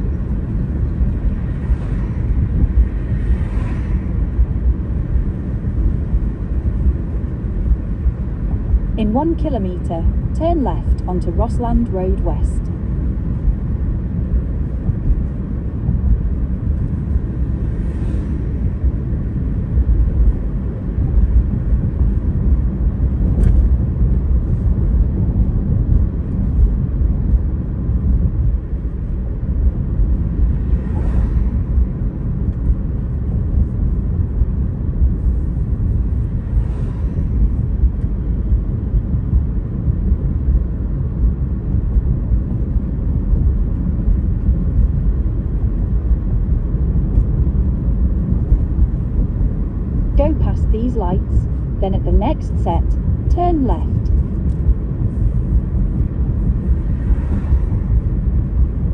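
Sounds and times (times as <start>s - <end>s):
car cabin road rumble: 0.0s - 58.9s.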